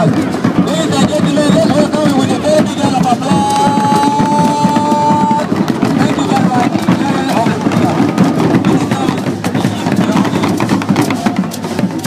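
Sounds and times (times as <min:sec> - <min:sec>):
crowd sound: 0:00.0 - 0:12.0
music: 0:00.0 - 0:12.0.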